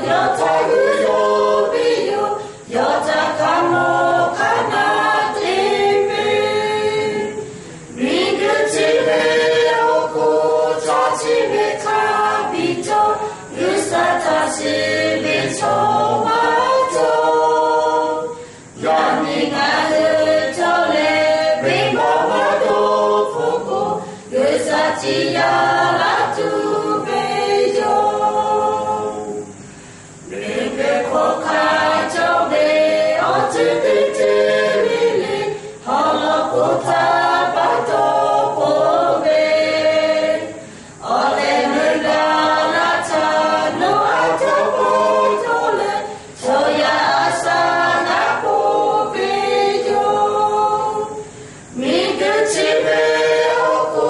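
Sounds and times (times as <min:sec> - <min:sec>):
group singing a hymn unaccompanied: 0:00.0 - 0:54.0.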